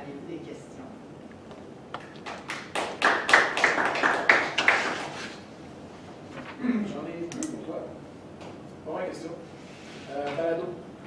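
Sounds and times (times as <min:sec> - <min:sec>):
audience clapping: 0:02.0 - 0:05.2.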